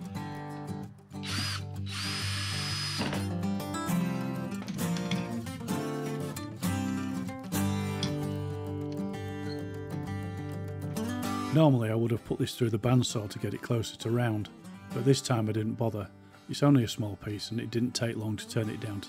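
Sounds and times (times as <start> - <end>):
acoustic guitar music: 0.0 - 19.0
cordless drill whining: 1.2 - 3.3.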